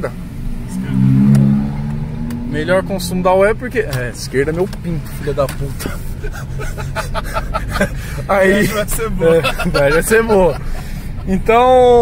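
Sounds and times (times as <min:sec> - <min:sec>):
car engine droning: 0:00.0 - 0:12.0
road noise: 0:00.0 - 0:12.0.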